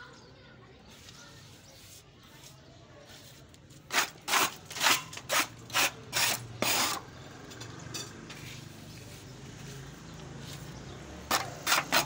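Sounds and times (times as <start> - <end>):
hand tool scraping strokes: 0.9 - 7.0, 11.3 - 12.0.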